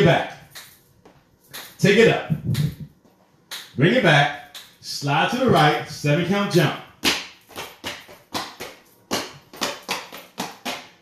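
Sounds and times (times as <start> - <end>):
dance steps tapping: 0.0 - 5.8, 6.5 - 11.0.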